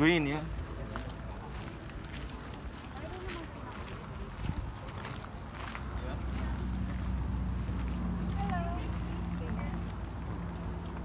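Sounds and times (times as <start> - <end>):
faint chatter: 0.0 - 11.0
footsteps on grass and gravel: 0.0 - 11.0.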